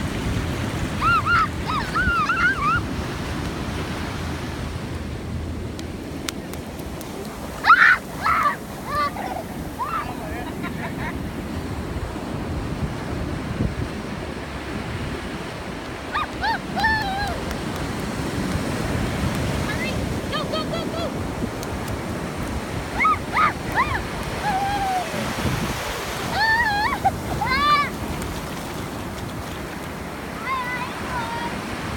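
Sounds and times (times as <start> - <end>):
ocean surf washing on beach: 0.0 - 31.9.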